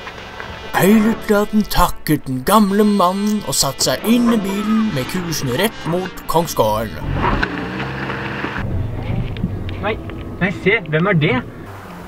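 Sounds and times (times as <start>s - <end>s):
road and wind hiss: 0.0s - 2.4s, 7.0s - 12.0s
car engine hum: 2.6s - 12.0s.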